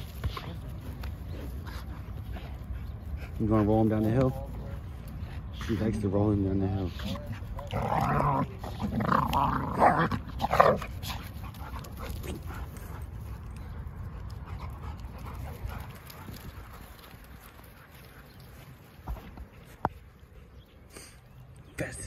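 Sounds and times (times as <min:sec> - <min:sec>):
faint outdoor background: 0:00.0 - 0:22.0
dogs growling: 0:06.9 - 0:13.0.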